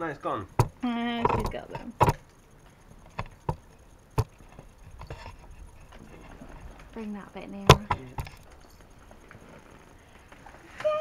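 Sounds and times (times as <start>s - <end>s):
sharp knocks: 0.6s - 2.2s, 7.6s - 8.4s.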